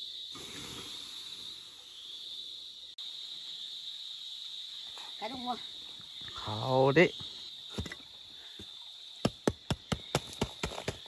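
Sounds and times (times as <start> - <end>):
water hissing on hot embers: 0.0 - 5.3
insects droning: 0.0 - 11.0.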